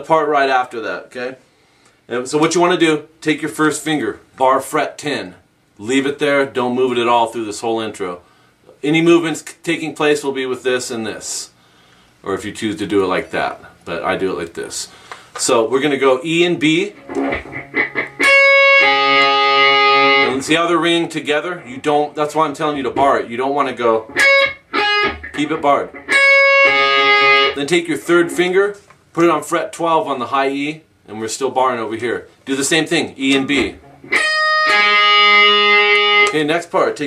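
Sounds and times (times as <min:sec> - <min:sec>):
electric guitar notes picked: 0:16.9 - 0:20.5, 0:24.0 - 0:27.6, 0:33.4 - 0:36.4.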